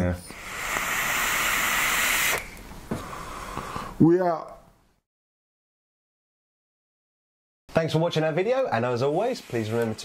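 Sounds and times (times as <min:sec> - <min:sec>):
electronic cigarette hissing: 0:00.3 - 0:03.9, 0:09.1 - 0:10.0.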